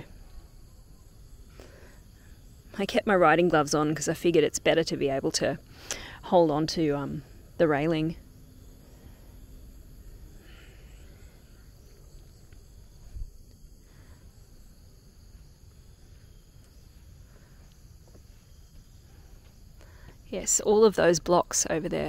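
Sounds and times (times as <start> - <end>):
low uneven rumble: 4.7 - 20.9.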